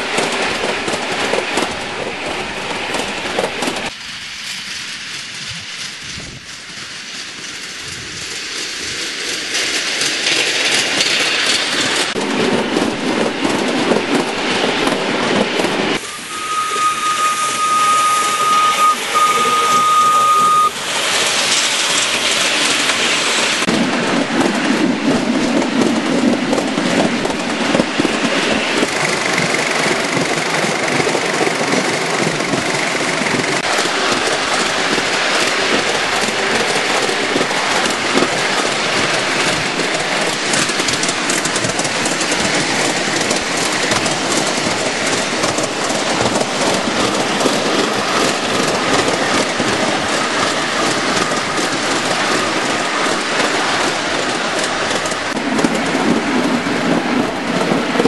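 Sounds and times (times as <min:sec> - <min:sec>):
miniature train running: 0:02.8 - 0:15.1, 0:15.9 - 0:58.0
small wheels clattering on track: 0:02.8 - 0:15.7, 0:19.8 - 0:58.0.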